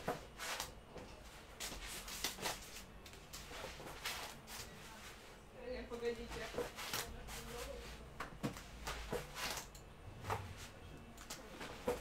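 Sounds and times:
rustling on exercise mat: 0.0s - 5.4s.

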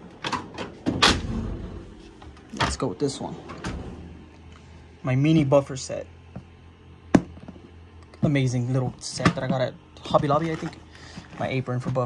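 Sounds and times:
metal drawer sliding shut: 0.2s - 2.0s, 2.6s - 4.2s.

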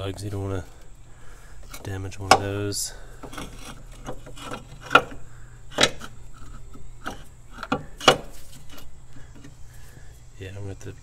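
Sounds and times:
metal clicks and scraping: 1.6s - 9.6s.

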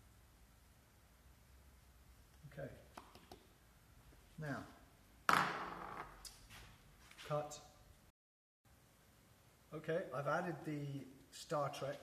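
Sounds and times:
plastic bowl knocking down: 5.3s - 6.0s.

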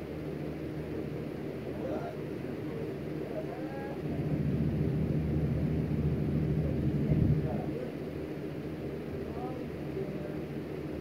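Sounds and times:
low steady rumble: 0.0s - 11.0s
faint distant voices: 9.1s - 10.6s.

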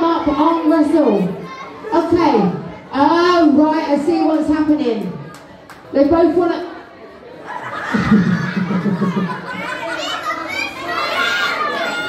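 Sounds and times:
voices in a large hall: 0.0s - 12.0s.

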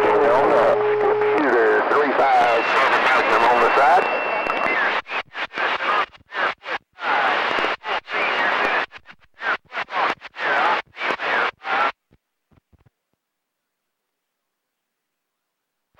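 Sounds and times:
faint garbled voice over radio: 0.0s - 12.0s
radio static: 0.0s - 12.0s.

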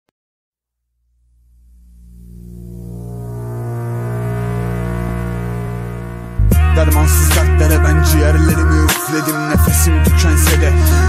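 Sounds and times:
low bass drone: 0.9s - 8.9s, 9.5s - 11.0s
synthesizer pad chord: 1.1s - 11.0s.

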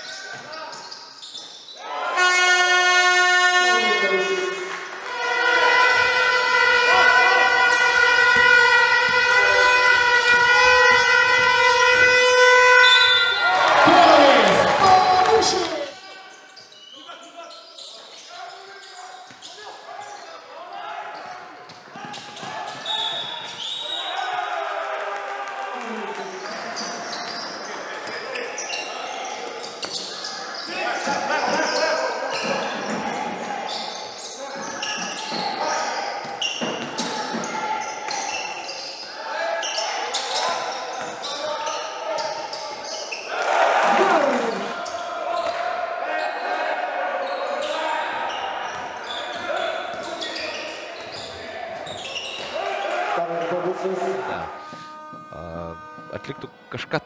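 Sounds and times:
voices and shouts: 1.8s - 17.6s, 27.6s - 56.5s.

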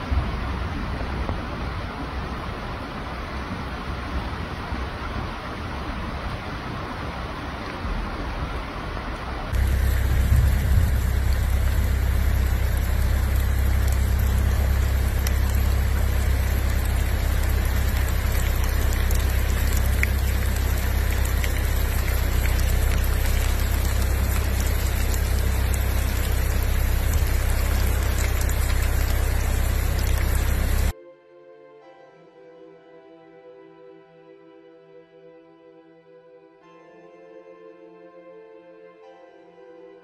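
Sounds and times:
floodwater rushing across road: 0.0s - 30.9s
heavy rain: 0.0s - 30.9s.

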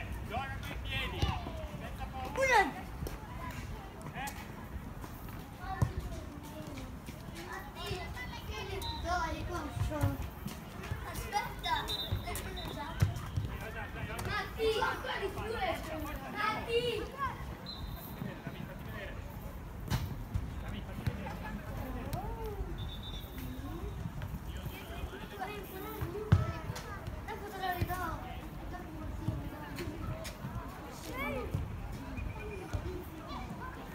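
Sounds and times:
football being kicked: 26.0s - 26.7s.

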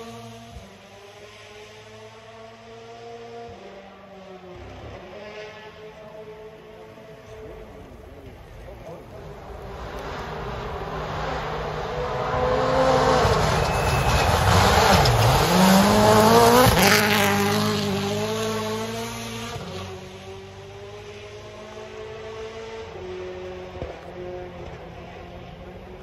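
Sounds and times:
rally car engine at full throttle: 0.0s - 26.0s.

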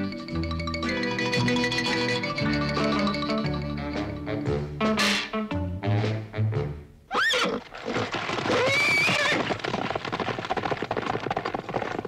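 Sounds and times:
horses whinnying: 7.1s - 12.0s
galloping hooves: 7.5s - 12.0s.

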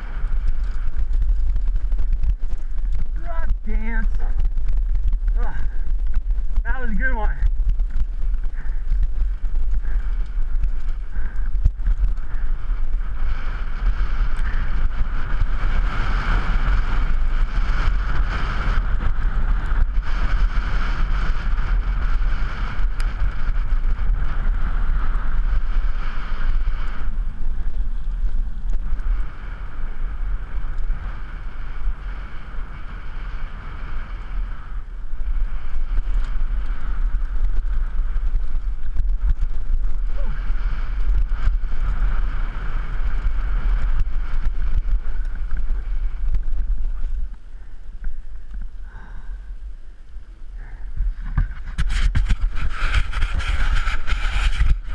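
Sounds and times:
tyres on loose dirt: 0.0s - 49.3s, 50.8s - 54.9s
wind rushing over microphone: 0.0s - 54.9s.

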